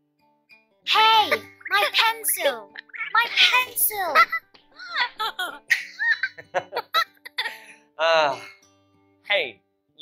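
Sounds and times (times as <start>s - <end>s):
light background music: 0.2s - 10.0s
child giggling: 3.2s - 7.5s.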